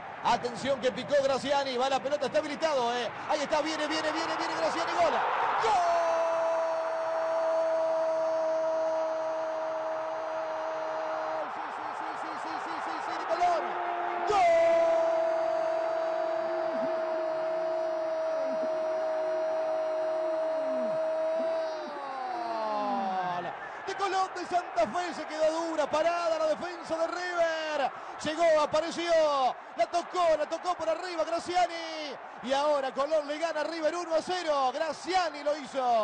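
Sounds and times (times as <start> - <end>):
stadium crowd noise: 0.0 - 36.0
commentator screaming goal: 4.6 - 27.9.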